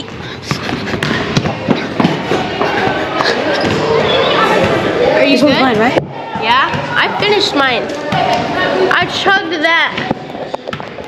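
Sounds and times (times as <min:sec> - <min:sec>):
basketballs bouncing on gym floor: 0:00.0 - 0:04.0, 0:05.7 - 0:08.5, 0:09.8 - 0:11.0
background chatter: 0:00.0 - 0:11.0.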